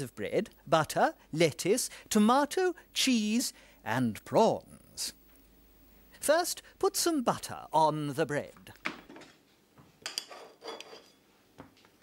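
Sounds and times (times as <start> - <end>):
knife scraping china plate: 10.2 - 11.2.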